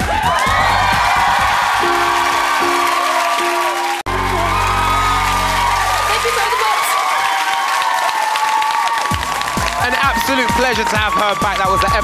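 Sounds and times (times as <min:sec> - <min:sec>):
audience cheering and applauding: 0:00.0 - 0:12.0
song ending on held note: 0:01.8 - 0:05.1.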